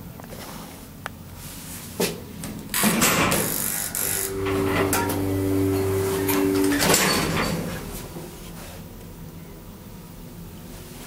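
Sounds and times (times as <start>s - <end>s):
elevator mechanical rumble: 2.5s - 10.6s
elevator two-tone hum: 2.5s - 10.6s
elevator stopping clunk: 2.7s - 8.4s.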